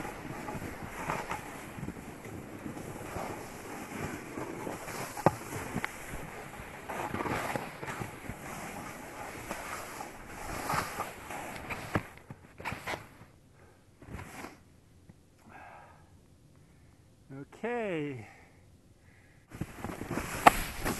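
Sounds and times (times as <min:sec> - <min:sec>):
snowboard scraping over snow: 0:00.0 - 0:13.1, 0:19.5 - 0:20.9.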